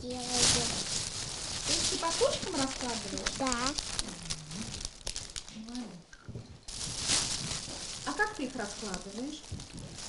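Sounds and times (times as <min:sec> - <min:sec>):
plastic bag rustling and crinkling: 0:00.0 - 0:10.0.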